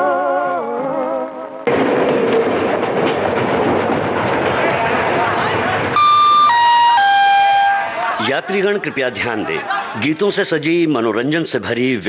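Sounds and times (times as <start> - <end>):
dense crowd hubbub: 4.3 - 10.9.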